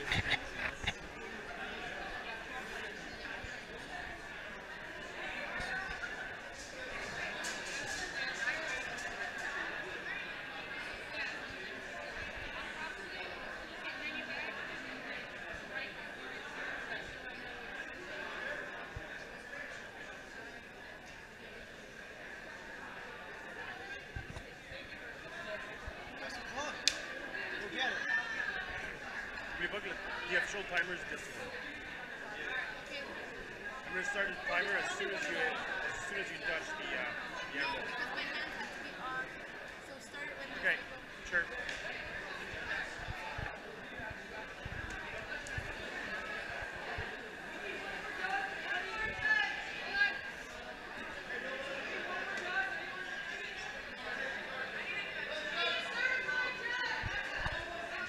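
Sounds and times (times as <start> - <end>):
crowd chatter in large hall: 0.0 - 58.0.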